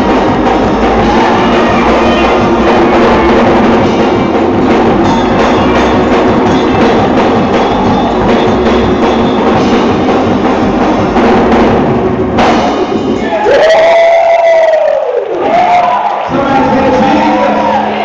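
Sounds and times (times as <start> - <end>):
drum kit beat: 0.0 - 14.8, 15.5 - 18.0
live gospel music: 0.0 - 18.0.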